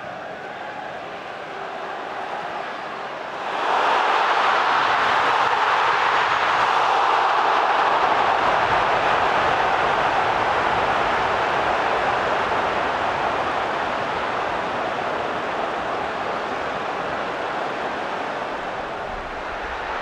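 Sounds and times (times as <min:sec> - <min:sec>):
stadium crowd roaring: 0:00.0 - 0:20.0.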